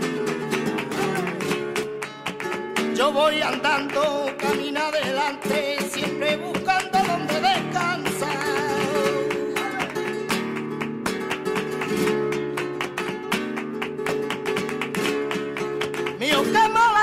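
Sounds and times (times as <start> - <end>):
man singing flamenco: 0.0 - 13.4, 14.0 - 17.0
fast strummed flamenco guitar: 0.0 - 17.0.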